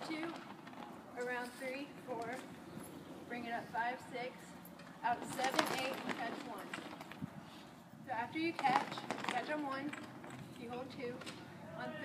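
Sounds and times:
woman speaking: 0.0 - 0.4, 1.2 - 2.4, 3.3 - 6.8, 8.1 - 10.0, 10.6 - 12.0.

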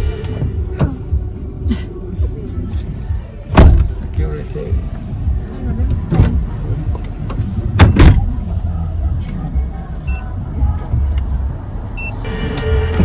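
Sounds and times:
car engine and road rumble: 0.0 - 13.0.

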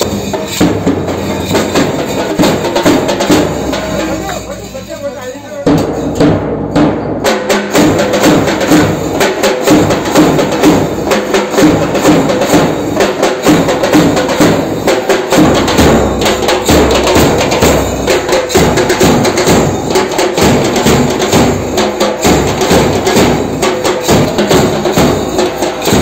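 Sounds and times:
hand drums beaten with sticks: 0.0 - 26.0.

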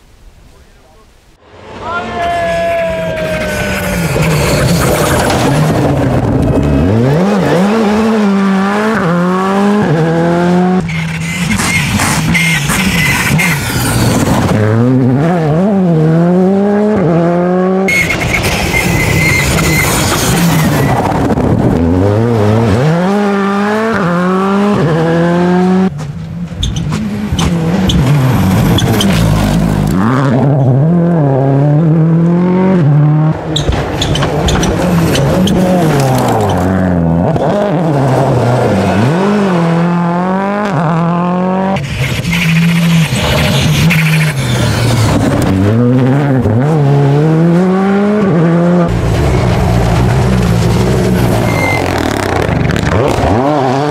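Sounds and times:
rally car engines revving: 1.4 - 53.9.

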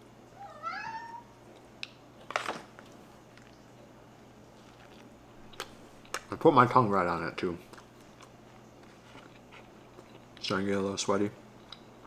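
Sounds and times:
cat meowing: 0.4 - 1.3.

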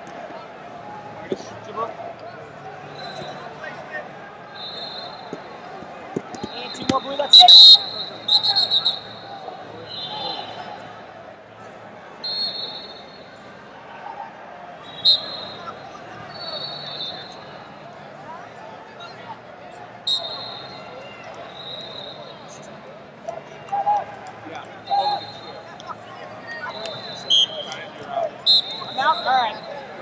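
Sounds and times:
crowd voices hubbub: 0.0 - 30.0
shrill referee whistles: 2.9 - 3.5, 4.5 - 5.5, 6.3 - 10.7, 12.2 - 13.4, 14.8 - 17.6, 20.1 - 22.8, 24.8 - 25.7, 26.5 - 30.0.

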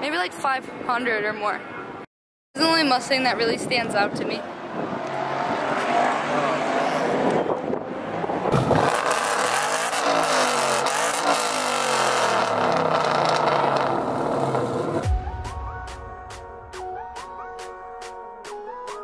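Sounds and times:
car engine revving: 4.9 - 15.0
music with steady beat: 15.0 - 19.0.

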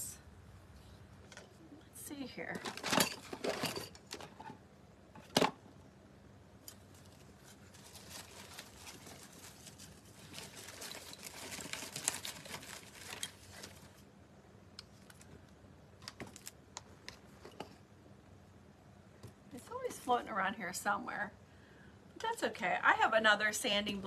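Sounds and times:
rustling and rattling: 2.5 - 4.6, 6.8 - 14.0.

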